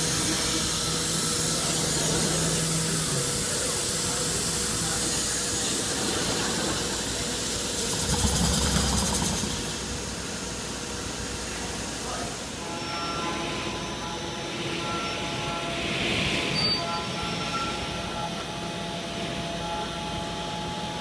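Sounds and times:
low machine rumble: 0.0 - 20.0
cnc machine running: 0.0 - 21.0.

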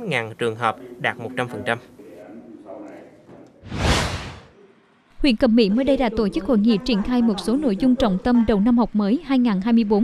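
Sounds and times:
whoosh transition effect: 3.6 - 4.5.

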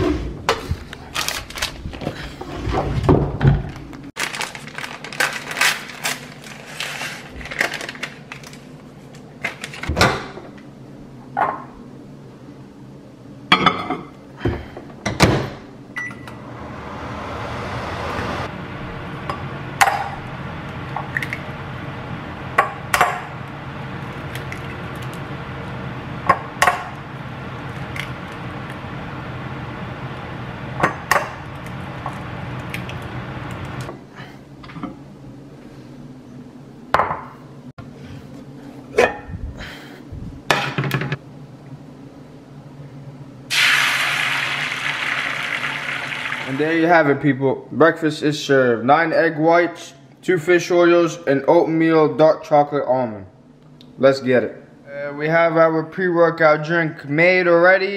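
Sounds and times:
microwave humming: 7.3 - 35.6
egg whites sizzling in a pan: 43.5 - 46.6.

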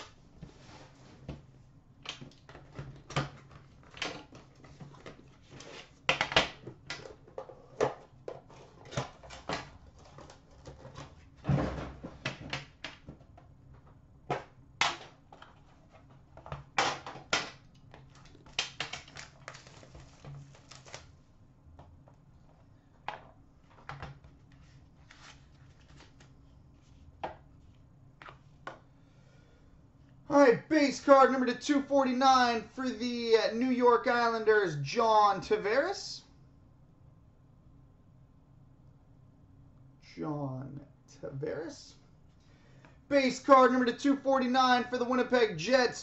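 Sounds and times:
plastic wrap crackling and tearing: 18.0 - 21.1.

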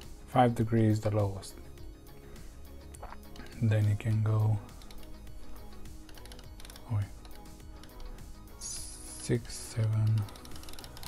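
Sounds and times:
thermostat dial clicking: 4.7 - 8.2, 9.2 - 11.0.

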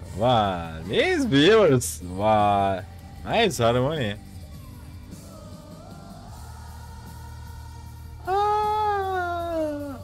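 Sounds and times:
backing singers vocal harmony: 0.0 - 9.2
steady low bass: 0.0 - 10.0.

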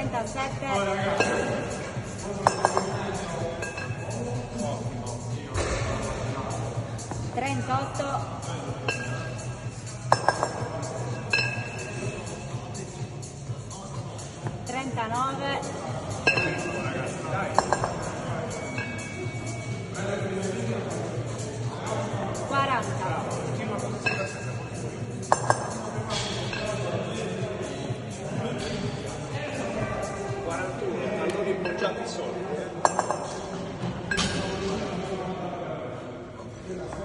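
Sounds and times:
kettlebells clinking together: 2.4 - 4.1, 8.8 - 12.0, 16.2 - 16.8, 17.5 - 19.2, 24.0 - 24.6, 25.2 - 26.9, 32.8 - 33.4, 34.1 - 34.5.

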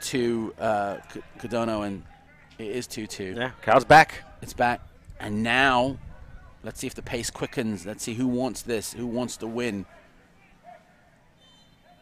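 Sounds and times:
faint outdoor soccer match ambience: 0.0 - 12.0.

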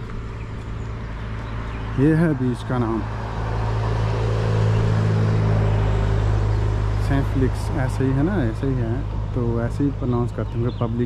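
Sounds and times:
car passing: 0.0 - 10.5.

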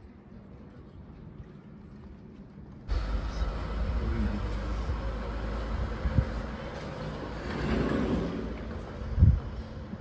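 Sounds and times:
sliding doors low rumble: 2.9 - 10.0.

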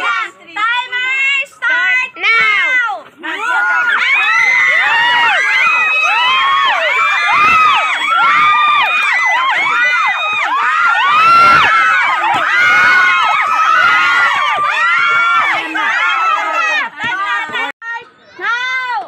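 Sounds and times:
children shouting and cheering: 0.0 - 19.0.

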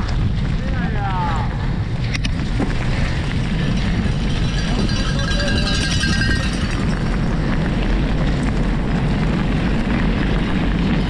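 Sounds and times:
steady low rumble: 0.0 - 11.0
wind buffeting microphone: 0.0 - 11.0.

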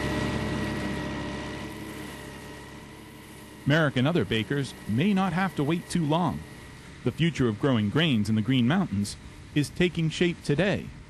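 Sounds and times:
mechanical drone with high whine: 0.0 - 11.0.

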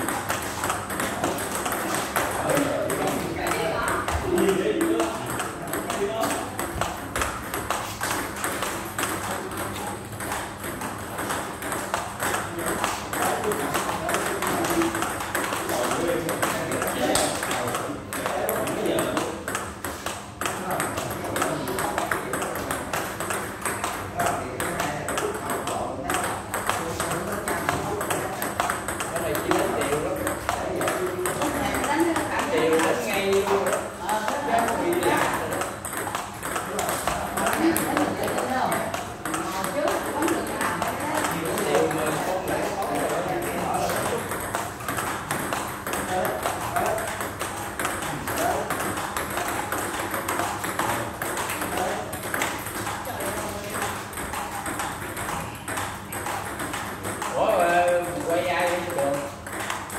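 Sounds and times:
table tennis ball clicks: 0.0 - 59.9.

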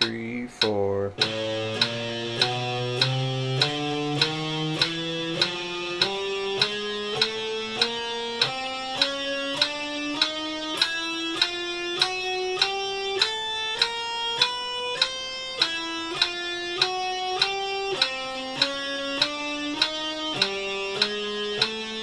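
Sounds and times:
electric guitar picked notes: 0.0 - 22.0
metronome ticking: 0.0 - 22.0.

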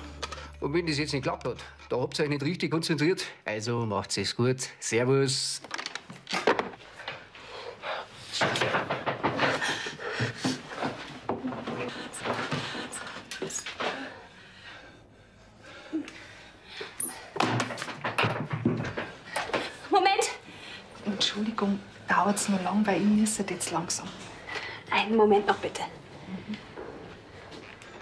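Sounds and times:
knocks thuds and clatter in a room: 8.1 - 14.2, 17.1 - 20.4.

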